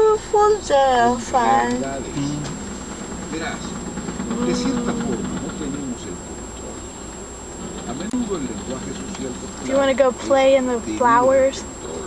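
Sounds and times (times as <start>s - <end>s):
buzzing drone in car cabin: 0.0s - 12.0s
low rumble: 0.6s - 11.1s.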